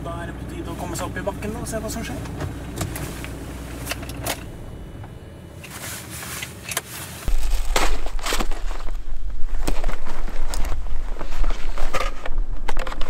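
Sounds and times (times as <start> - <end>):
car interior road noise: 0.0 - 13.0.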